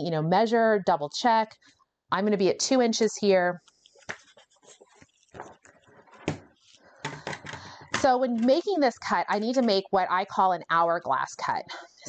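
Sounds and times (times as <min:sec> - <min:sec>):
paper rustling: 0:03.6 - 0:07.5.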